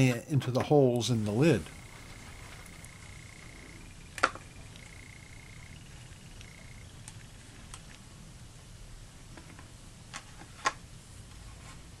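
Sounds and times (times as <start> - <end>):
faint high whine: 0.0 - 10.1
faint ticks: 1.6 - 8.0.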